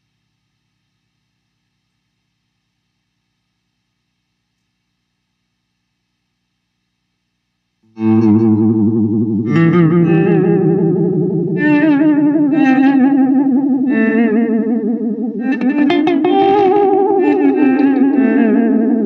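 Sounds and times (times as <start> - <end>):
electric guitar sustained wobbling tone: 7.9 - 19.0.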